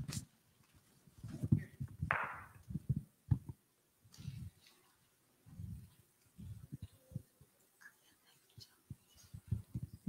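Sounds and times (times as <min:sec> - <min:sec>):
microphone handling rustle: 0:00.0 - 0:04.8
dull thumps on microphone: 0:01.3 - 0:03.6.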